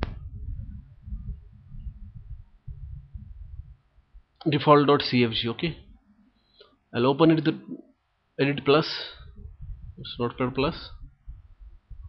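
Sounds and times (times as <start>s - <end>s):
faint low rumble: 0.0s - 6.4s, 7.0s - 12.0s.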